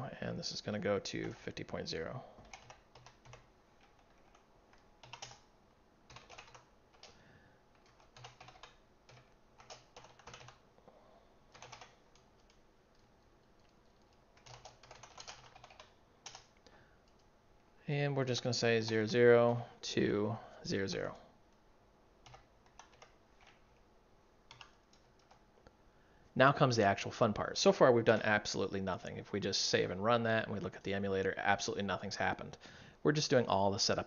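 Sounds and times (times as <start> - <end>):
computer keyboard typing: 2.4 - 5.5, 6.1 - 10.6, 11.5 - 17.3, 22.2 - 23.6, 24.5 - 25.4.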